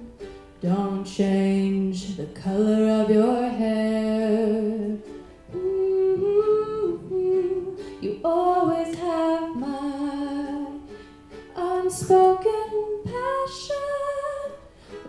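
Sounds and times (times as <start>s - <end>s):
woman singing: 0.0s - 10.9s, 11.5s - 14.8s
strummed ukulele: 0.0s - 15.0s.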